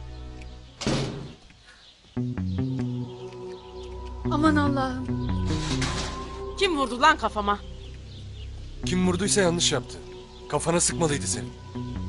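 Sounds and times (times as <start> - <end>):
held background music notes: 0.0 - 12.0
door banging: 0.8 - 1.4, 5.5 - 6.4.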